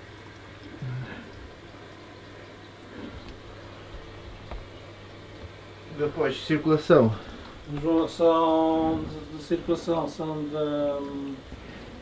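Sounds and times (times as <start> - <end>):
aquarium pump hum: 0.0 - 12.0
running water: 0.0 - 12.0.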